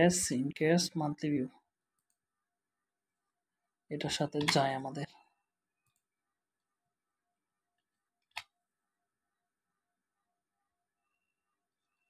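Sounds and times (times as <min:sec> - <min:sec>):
computer mouse click: 0:04.4 - 0:04.6.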